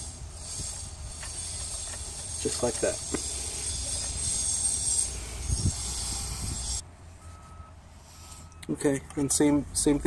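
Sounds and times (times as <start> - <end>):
steady high-pitched buzz: 0.0 - 6.8
faint beep: 7.2 - 9.4.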